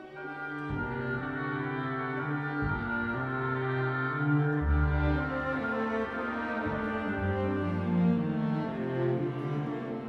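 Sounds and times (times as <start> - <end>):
orchestra playing sustained chords: 0.0 - 10.0.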